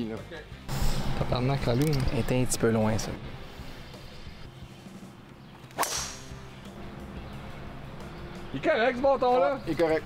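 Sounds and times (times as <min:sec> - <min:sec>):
golf club striking ball: 0:05.7 - 0:06.6.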